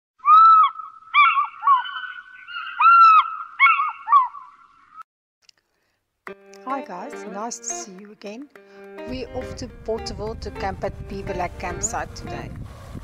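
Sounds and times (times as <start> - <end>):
birds calling loudly: 0.2 - 5.0.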